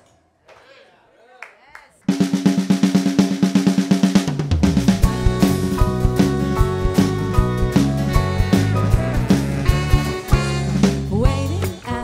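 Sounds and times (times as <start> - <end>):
snare drum roll: 2.1 - 11.0
live band playing low chord: 4.5 - 12.0.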